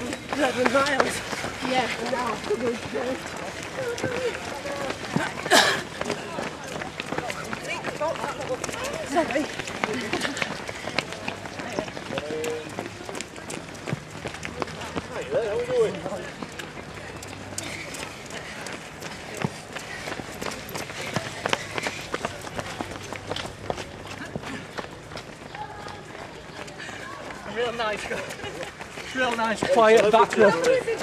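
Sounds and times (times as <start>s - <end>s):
runners footsteps on pavement: 0.0s - 31.0s.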